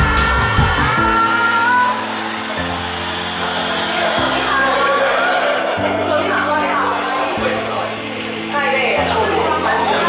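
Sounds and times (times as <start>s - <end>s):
pop music playing in room: 0.0s - 10.0s.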